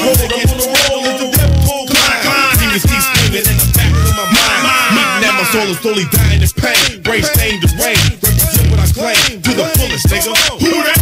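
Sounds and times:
rapping over a beat: 0:00.0 - 0:11.0
heavy bass notes: 0:01.4 - 0:09.1.

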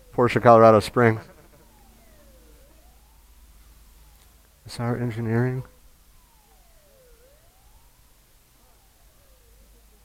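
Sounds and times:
faint wailing siren: 0:00.0 - 0:10.0.

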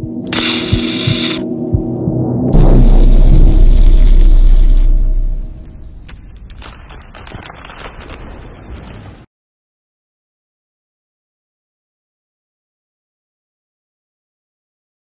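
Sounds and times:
held music chords: 0:00.0 - 0:06.1
deep boom: 0:00.7 - 0:06.4
sparkling crackles: 0:02.6 - 0:09.3.

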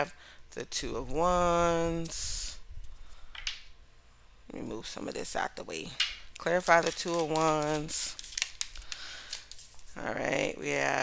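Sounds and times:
playing cards clicking and rustling: 0:06.0 - 0:09.8.

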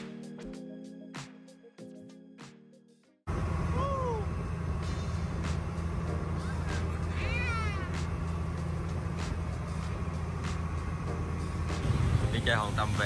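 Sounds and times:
boat engine drone: 0:03.3 - 0:13.0
high wavering cry: 0:03.7 - 0:04.4, 0:06.4 - 0:08.0.

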